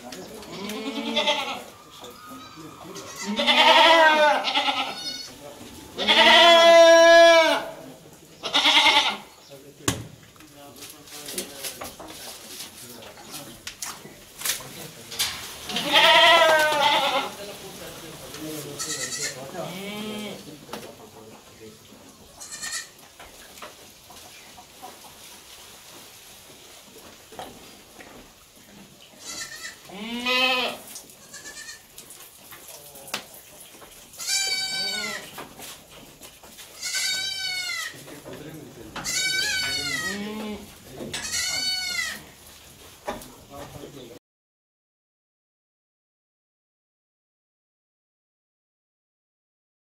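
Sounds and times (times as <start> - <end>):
goats bleating: 0.3 - 9.4, 15.6 - 17.4, 18.6 - 20.5, 22.3 - 23.0, 29.2 - 32.0, 34.1 - 35.4, 36.6 - 38.0, 39.0 - 42.4.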